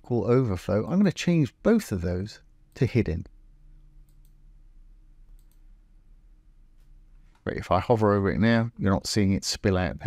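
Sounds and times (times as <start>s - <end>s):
low steady hum: 0.0s - 10.0s
computer mouse clicks: 4.0s - 4.4s, 5.3s - 5.7s.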